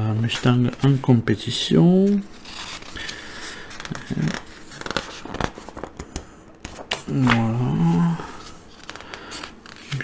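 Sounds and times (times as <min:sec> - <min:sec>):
magazine pages turning: 0:01.9 - 0:10.0.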